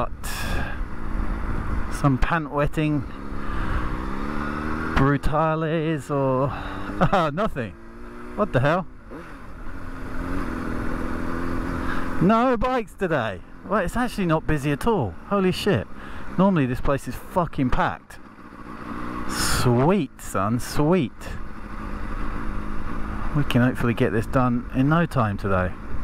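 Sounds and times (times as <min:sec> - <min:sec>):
motorcycle engine running: 0:00.0 - 0:26.0
wind and road noise: 0:00.0 - 0:26.0.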